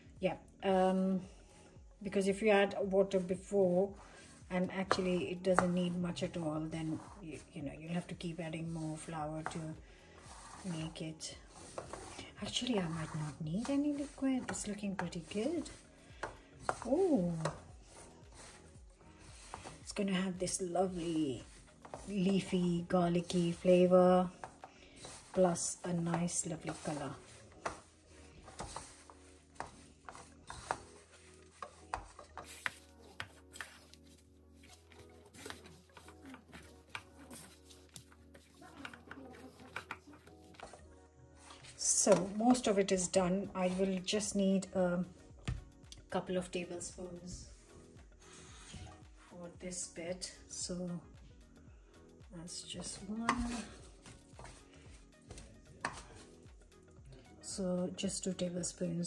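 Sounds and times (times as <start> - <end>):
soft background music: 0.0 - 59.0
hands mixing dough in metal bowl: 4.2 - 44.4, 52.8 - 56.4.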